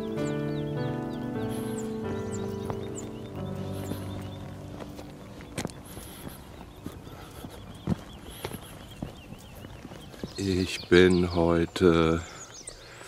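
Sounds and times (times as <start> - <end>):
footsteps on stony ground: 0.0 - 13.0.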